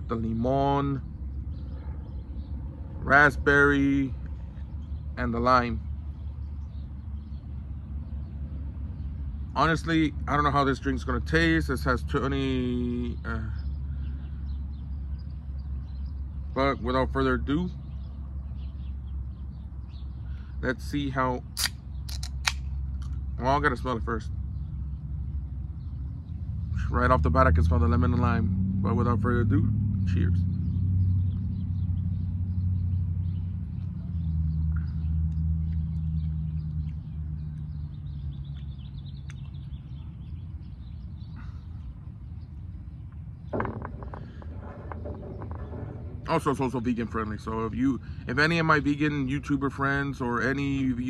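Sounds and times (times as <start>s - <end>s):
steady low rumble: 0.0s - 17.3s
vehicle engine hum: 0.0s - 51.0s
faint bird chirps: 30.0s - 51.0s.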